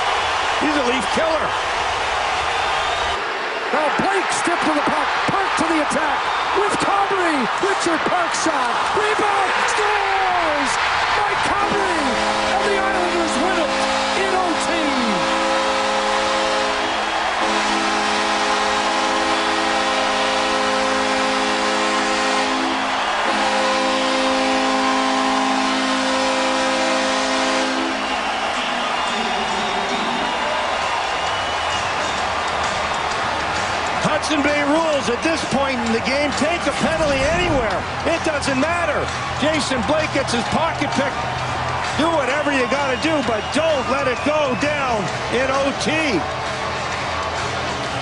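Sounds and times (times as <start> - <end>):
crowd cheering: 0.0 - 48.0
arena goal horn blasts: 4.0 - 32.1.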